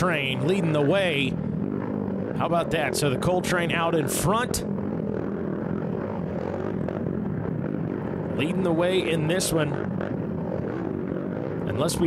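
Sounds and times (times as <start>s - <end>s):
quad engines passing: 0.0s - 12.0s.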